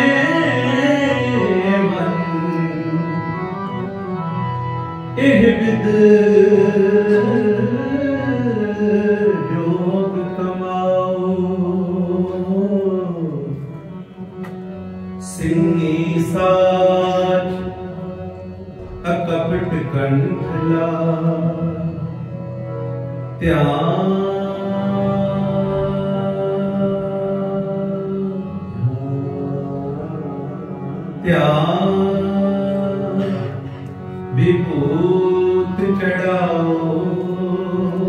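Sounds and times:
man singing: 0:00.0 - 0:04.1, 0:05.2 - 0:13.7, 0:15.2 - 0:22.2, 0:23.4 - 0:38.0
harmonium chord: 0:00.0 - 0:38.0.

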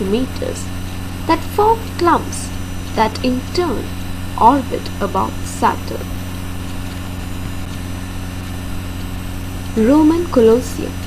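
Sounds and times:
constant hiss: 0:00.0 - 0:11.0
steady low hum: 0:00.0 - 0:11.0.

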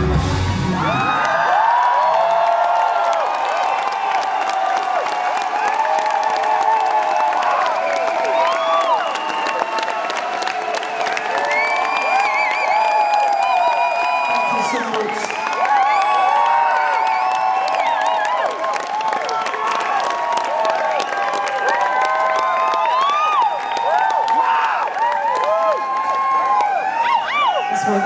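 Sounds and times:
rock band playing live: 0:00.0 - 0:01.0
crowd cheering and screaming: 0:00.0 - 0:28.0.

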